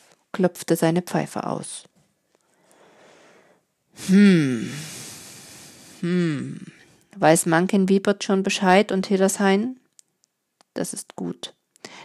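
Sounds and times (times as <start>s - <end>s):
soft breath intake: 2.5s - 3.7s, 4.7s - 6.0s.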